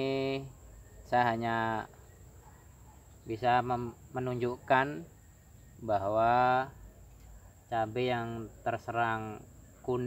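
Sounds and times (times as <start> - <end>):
man speaking: 0.0 - 2.0, 3.2 - 5.2, 5.8 - 6.8, 7.7 - 10.0.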